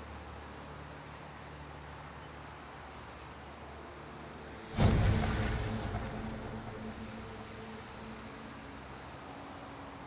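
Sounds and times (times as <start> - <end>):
low outdoor hum: 0.0 - 10.0
loud hit with sustained rumble: 4.7 - 8.5.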